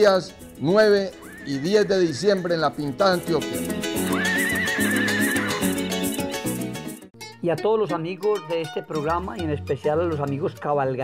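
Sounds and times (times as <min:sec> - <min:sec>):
background music: 0:00.0 - 0:11.0
horse whinny: 0:01.2 - 0:02.2, 0:03.9 - 0:05.9.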